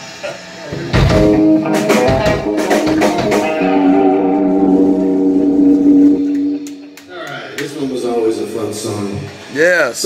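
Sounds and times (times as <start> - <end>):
electric guitar chord ringing: 1.2 - 8.1.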